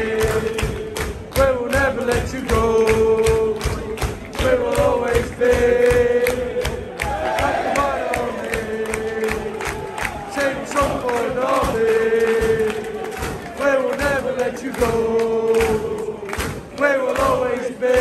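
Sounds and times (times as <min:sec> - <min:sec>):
crowd singing a chant: 0:00.0 - 0:18.0.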